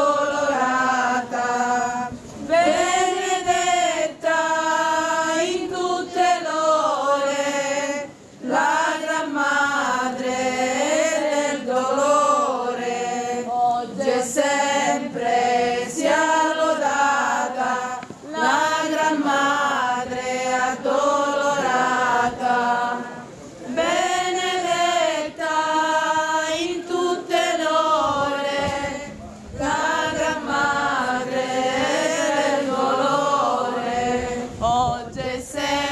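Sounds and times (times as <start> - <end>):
voices singing religious chant: 0.0 - 35.9.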